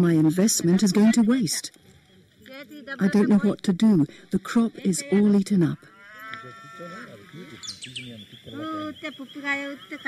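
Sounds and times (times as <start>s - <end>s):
livestock bleating: 5.0s - 7.8s.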